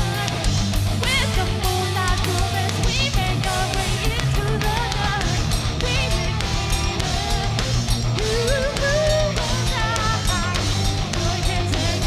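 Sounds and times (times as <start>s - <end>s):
bass guitar: 0.0s - 12.0s
distorted electric guitars: 0.0s - 12.0s
drums: 0.0s - 12.0s.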